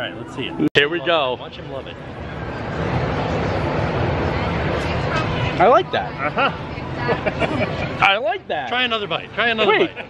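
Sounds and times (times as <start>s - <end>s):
steady rushing outdoor noise: 0.0s - 10.0s.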